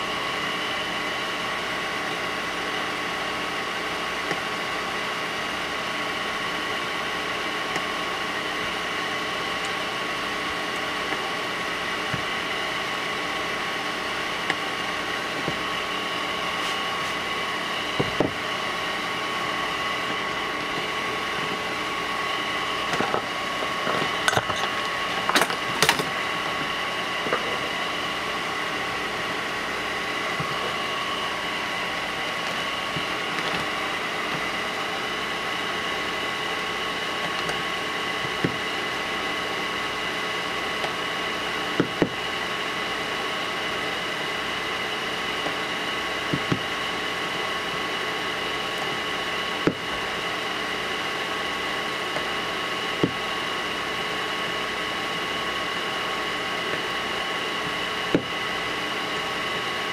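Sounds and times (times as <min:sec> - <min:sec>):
small fan whirring: 0:00.0 - 0:59.9.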